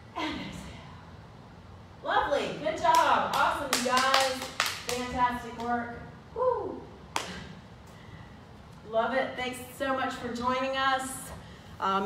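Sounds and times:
woman clapping hands: 0:02.9 - 0:05.0.

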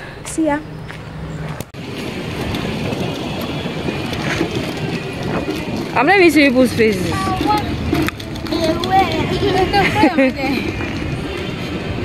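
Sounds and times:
rushing outdoor car park noise: 0:00.0 - 0:12.0.

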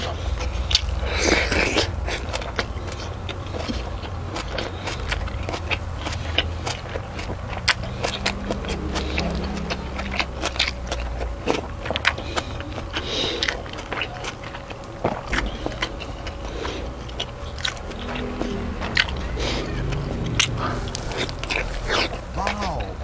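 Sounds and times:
steady low hum: 0:00.0 - 0:23.0
wet chewing smacks: 0:00.0 - 0:23.0.

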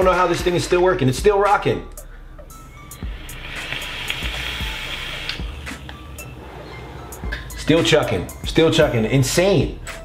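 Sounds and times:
airy hiss of vapour: 0:02.5 - 0:07.2.

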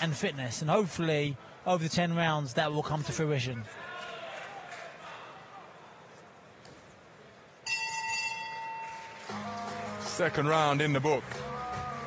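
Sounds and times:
boxing ring bell: 0:07.6 - 0:09.2.

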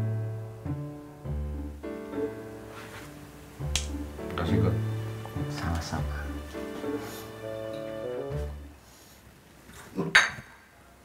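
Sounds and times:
slow piano chords: 0:00.0 - 0:08.8.

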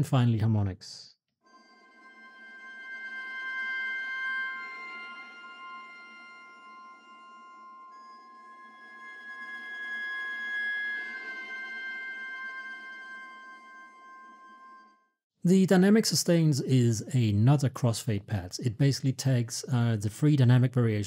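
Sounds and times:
viola bowed harmonics: 0:01.5 - 0:15.1.

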